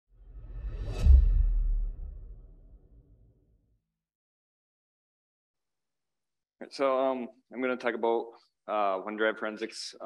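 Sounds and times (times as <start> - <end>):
whoosh: 0.1 - 3.4
deep rumbling boom: 0.3 - 3.2.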